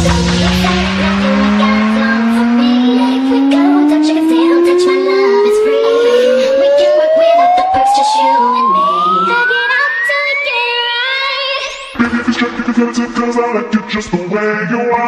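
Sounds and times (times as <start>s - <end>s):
rising synth sweep: 0.0s - 13.4s
club remix music: 0.0s - 15.0s.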